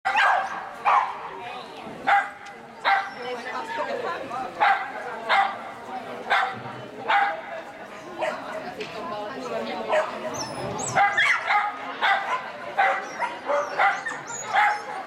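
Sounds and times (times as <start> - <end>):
dog barking sharply: 0.1 - 1.2
murmur of people talking: 0.1 - 15.0.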